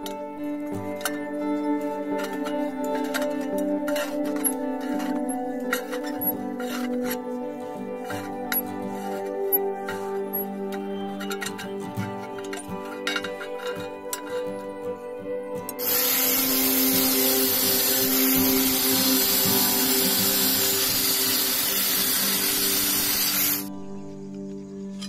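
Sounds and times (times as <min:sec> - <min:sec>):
angle grinder cutting steel: 0:15.8 - 0:23.7.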